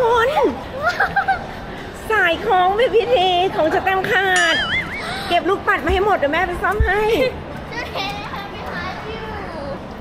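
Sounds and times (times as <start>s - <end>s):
background chatter: 0.0s - 10.0s
faint children's voices: 7.5s - 10.0s.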